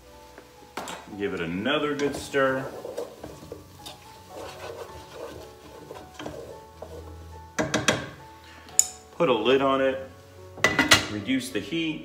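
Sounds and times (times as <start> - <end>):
soft background music: 0.0 - 12.0
spoon stirring food in a pan: 0.7 - 9.0
kitchenware clacking on a pan: 7.6 - 8.2, 10.6 - 11.2.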